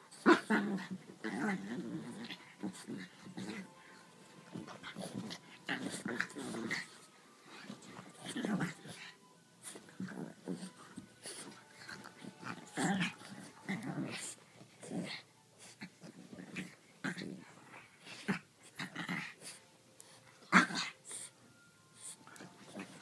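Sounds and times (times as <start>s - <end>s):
dogs growling: 0.1s - 19.6s, 20.4s - 21.3s
dogs breathing heavily: 8.8s - 13.6s.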